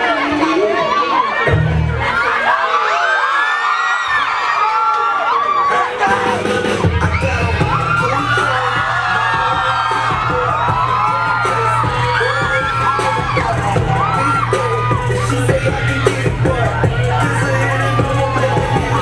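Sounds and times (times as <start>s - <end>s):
dance music bass: 0.0s - 2.3s, 5.7s - 19.0s
crowd cheering and yelling: 0.0s - 19.0s.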